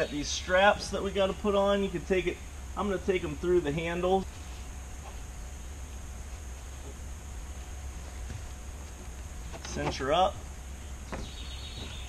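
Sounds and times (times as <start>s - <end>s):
low background rumble and hiss: 0.0s - 12.0s.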